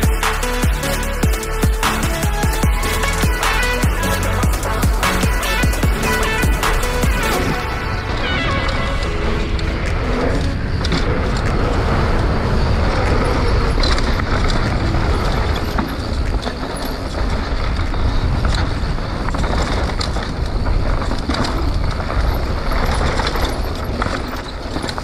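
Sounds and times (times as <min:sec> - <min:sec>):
bike clicking and rattling: 0:00.0 - 0:25.0
bike tyre noise: 0:00.0 - 0:25.0
wind rumble on microphone: 0:04.9 - 0:25.0.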